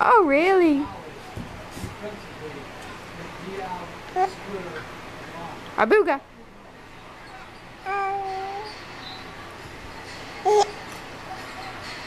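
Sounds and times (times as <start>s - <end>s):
baby cooing: 7.8s - 8.8s, 10.4s - 11.0s.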